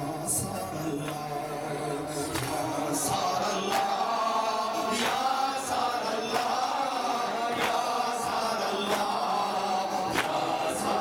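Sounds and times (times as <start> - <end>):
man chanting through loudspeaker: 0.0 - 11.0
crowd beating chests: 2.3 - 11.0.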